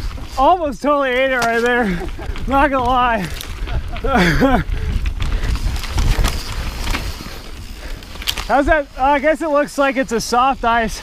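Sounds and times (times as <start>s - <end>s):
bike clicks and rattles: 0.0s - 11.0s
bike tyres rumbling on dirt: 0.0s - 11.0s
wind on microphone: 2.0s - 9.0s.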